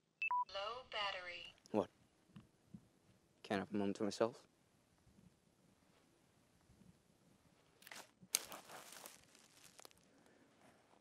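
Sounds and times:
sharp twig crack: 7.8 - 10.0
footsteps through dry leaves: 7.8 - 10.1.

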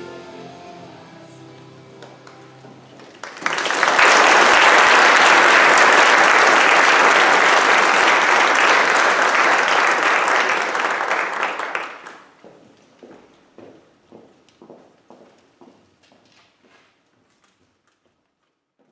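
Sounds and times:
audience applauding: 2.0 - 12.4.

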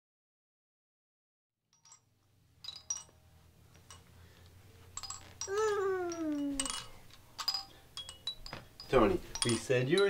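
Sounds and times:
toy chime clinking: 1.8 - 10.0
toddler's voice: 5.5 - 6.9.

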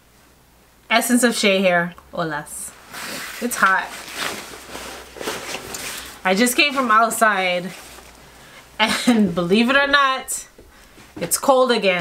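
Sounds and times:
jacket fabric rustling: 2.8 - 11.5.

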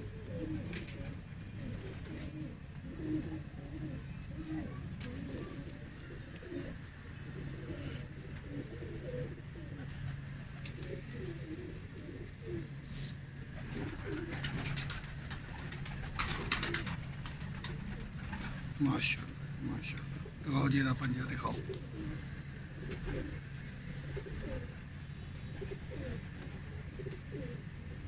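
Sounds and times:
pigeons cooing: 0.0 - 28.0.

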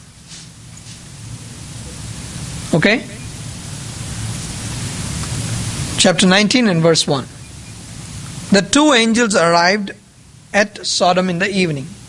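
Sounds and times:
low hum: 0.0 - 12.0
steady hiss: 0.0 - 12.0.

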